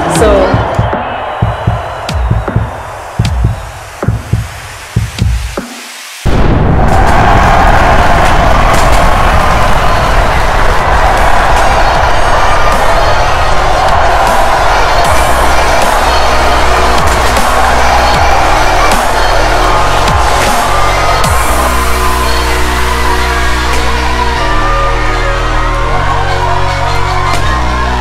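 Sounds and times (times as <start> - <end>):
crowd screaming and cheering: 0.0 - 5.6, 6.2 - 28.0
music with heavy bass line: 0.2 - 28.0.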